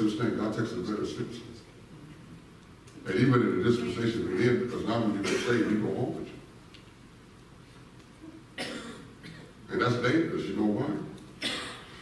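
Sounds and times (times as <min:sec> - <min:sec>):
short cough: 0:05.2 - 0:05.7, 0:08.6 - 0:09.6, 0:11.4 - 0:12.0.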